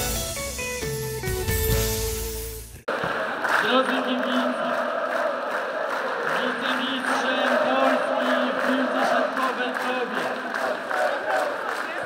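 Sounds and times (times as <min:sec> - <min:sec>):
crowd chanting in unison: 0:02.9 - 0:12.0
crowd clapping: 0:02.9 - 0:12.0.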